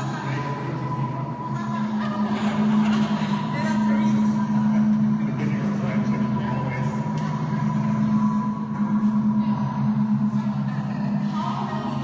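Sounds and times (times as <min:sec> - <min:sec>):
group of voices droning: 0:00.0 - 0:12.0
thin steady high tone: 0:00.0 - 0:12.0.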